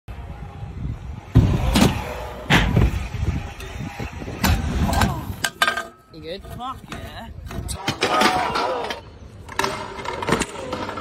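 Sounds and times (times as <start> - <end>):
scooter wheels rolling on concrete: 0.1 - 11.0
scooter clatter and scrape: 1.3 - 11.0.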